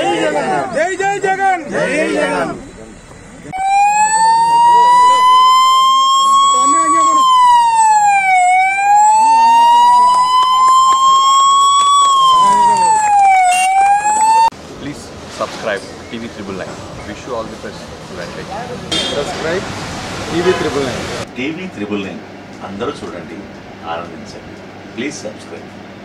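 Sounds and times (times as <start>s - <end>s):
faint crowd voices: 0.0s - 7.4s
electronic siren wailing: 3.5s - 14.5s.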